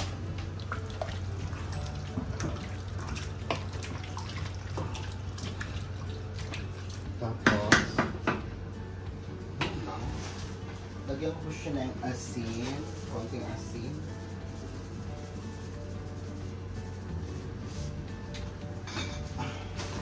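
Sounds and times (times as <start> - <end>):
wooden spoon stirring in a pot: 0.4 - 7.6.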